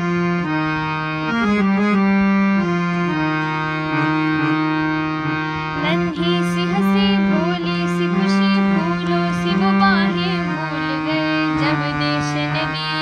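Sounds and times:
harmonium playing with drone: 0.0 - 13.0
girl singing: 5.8 - 13.0.

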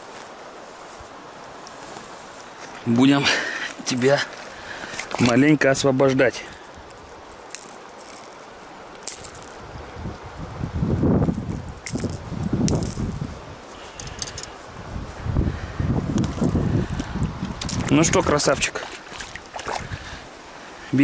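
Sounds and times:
light metallic clicks and rattles: 14.0 - 14.6.

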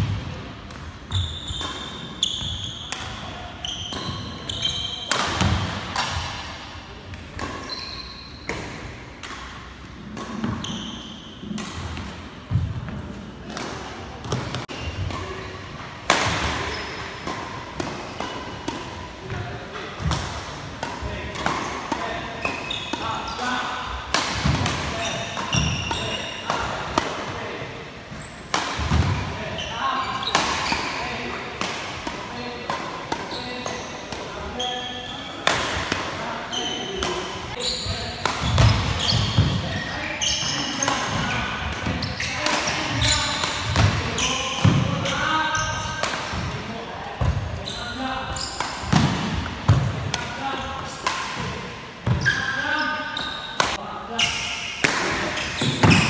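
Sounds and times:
sneakers squeaking: 1.1 - 6.3, 7.3 - 9.4, 10.1 - 12.0, 14.2 - 56.0
rackets hitting shuttlecocks: 13.5 - 29.4, 35.4 - 36.2, 38.2 - 39.7, 48.4 - 52.2, 53.6 - 53.8, 54.8 - 56.0.

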